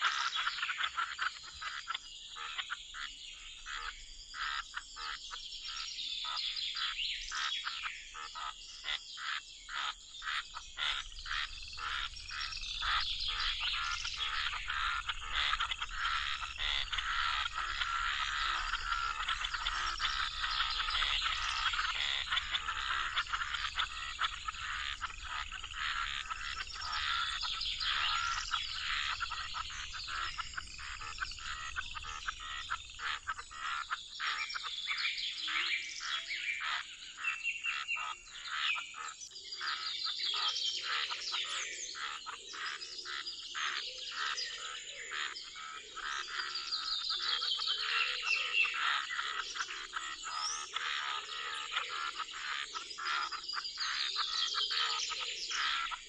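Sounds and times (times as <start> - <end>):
birds chirping: 0.0 - 56.0
frogs trilling and croaking: 0.0 - 56.0.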